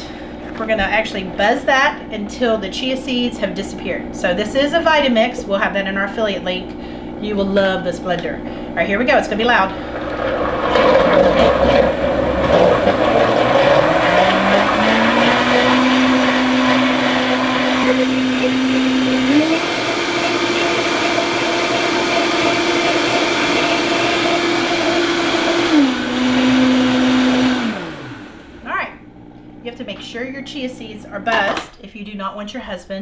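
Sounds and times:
blender motor whining: 9.4s - 29.7s.

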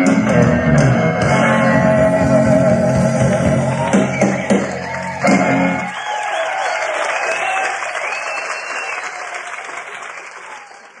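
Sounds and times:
audience applauding and cheering: 1.1s - 11.0s.

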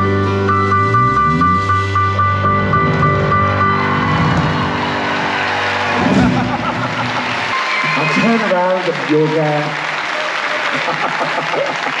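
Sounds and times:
audience applauding and cheering: 2.8s - 12.0s.

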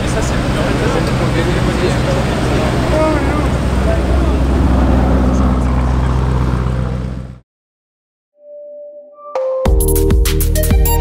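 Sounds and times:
crowd chattering: 0.0s - 6.3s
car engine low rumble: 0.0s - 7.4s.

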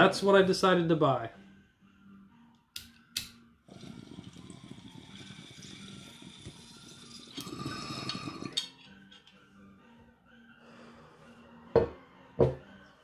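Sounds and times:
water pipe bubbling: 3.7s - 8.6s.

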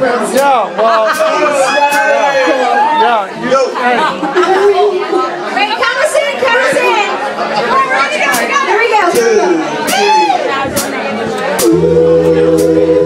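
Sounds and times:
overlapping voices talking loudly: 0.0s - 13.0s.

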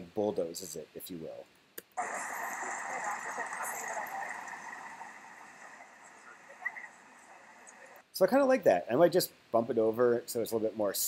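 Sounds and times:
outdoor ambient noise: 0.1s - 8.1s.

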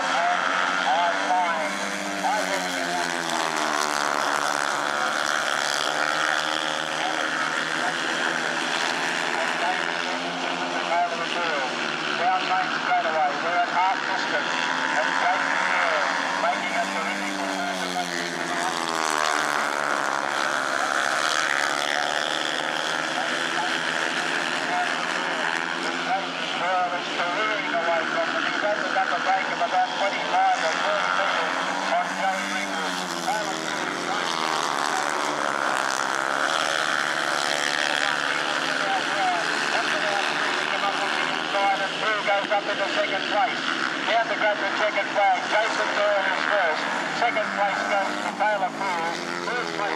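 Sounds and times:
motorcycles racing: 0.0s - 49.9s.

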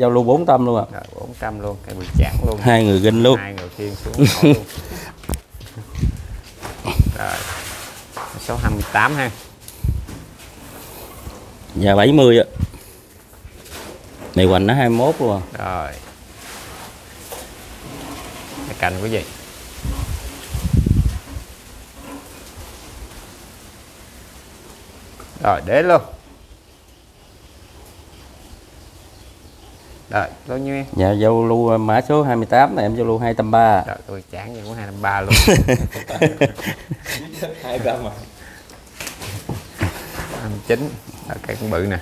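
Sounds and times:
steady hiss: 0.0s - 42.0s.

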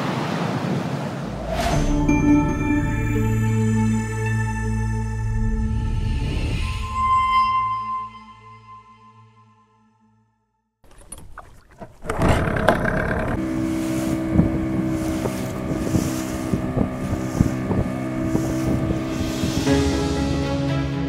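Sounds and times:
outboard motor running: 10.9s - 19.7s
rushing water: 10.9s - 19.9s
wind on microphone: 11.0s - 19.8s.

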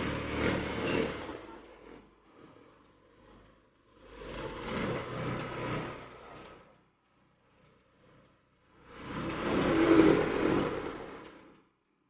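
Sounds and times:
motor vehicle passing by: 0.0s - 6.8s, 7.4s - 11.7s.

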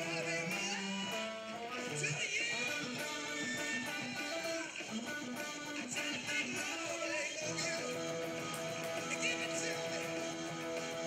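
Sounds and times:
electric guitar lead line: 0.0s - 11.0s.

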